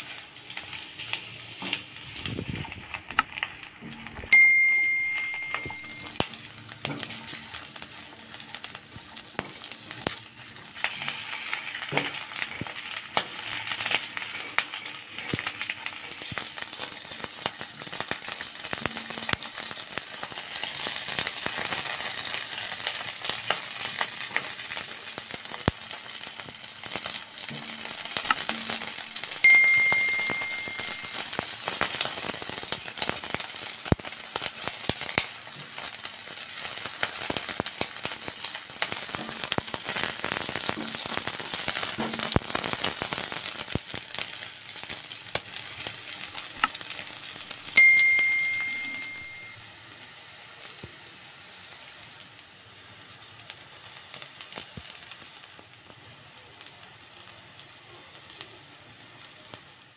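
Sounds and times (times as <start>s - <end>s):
chillies sizzling in hot oil: 0.0s - 59.9s
bell-like ding: 4.3s - 6.2s, 29.4s - 31.4s, 47.8s - 49.6s.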